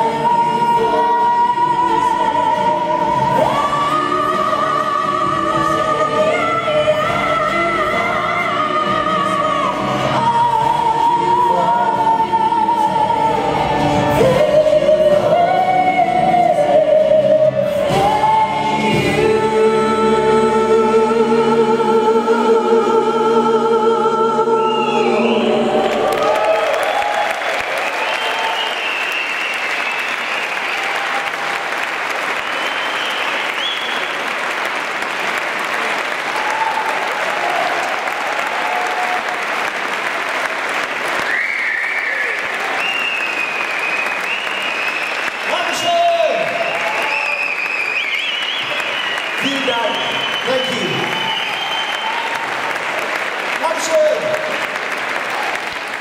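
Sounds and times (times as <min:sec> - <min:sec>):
audience applauding: 0:24.8 - 0:56.0
crowd shouts: 0:25.5 - 0:28.8, 0:36.3 - 0:39.5
high whistles: 0:27.3 - 0:31.0, 0:32.4 - 0:34.2, 0:41.2 - 0:45.5, 0:46.4 - 0:52.4.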